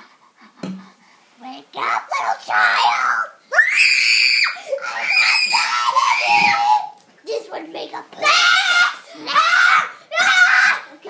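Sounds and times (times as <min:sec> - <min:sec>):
child shouting: 0:02.0 - 0:07.0, 0:08.2 - 0:11.0
child screaming: 0:02.2 - 0:07.0, 0:08.2 - 0:10.9.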